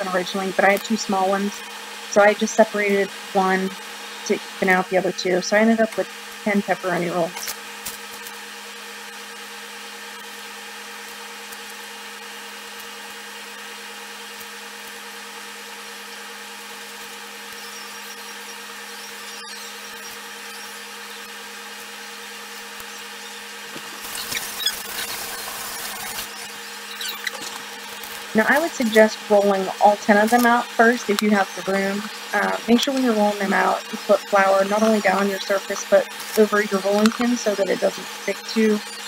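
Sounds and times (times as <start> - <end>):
steady tonal hum: 0.0 - 7.8, 17.3 - 39.0.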